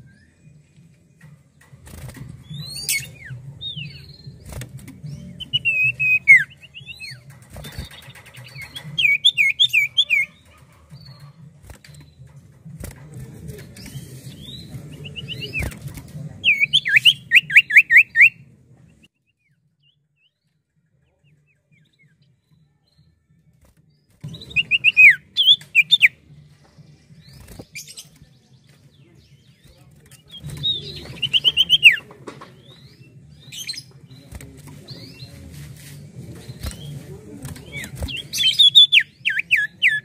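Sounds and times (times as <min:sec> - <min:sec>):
wing flutters: 0:01.2 - 0:03.4, 0:04.0 - 0:17.1, 0:33.8 - 0:38.8
bird whistling song: 0:02.4 - 0:04.4, 0:05.1 - 0:10.4, 0:16.4 - 0:18.4, 0:24.3 - 0:26.2, 0:30.2 - 0:34.3, 0:37.6 - 0:40.0.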